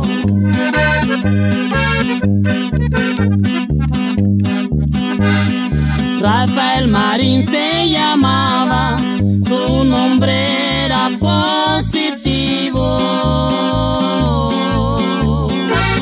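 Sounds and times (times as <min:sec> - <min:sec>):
button accordion melody: 0:00.0 - 0:11.0, 0:12.2 - 0:16.0
bass and guitar rhythm: 0:00.0 - 0:16.0.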